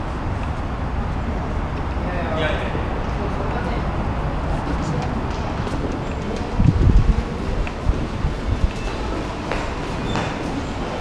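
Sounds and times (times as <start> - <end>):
steady low rumble: 0.0 - 11.0
muffled low thumps: 6.6 - 7.3.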